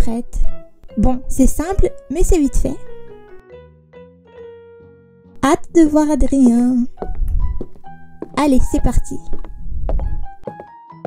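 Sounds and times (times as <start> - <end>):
keyboard music: 0.0 - 11.0.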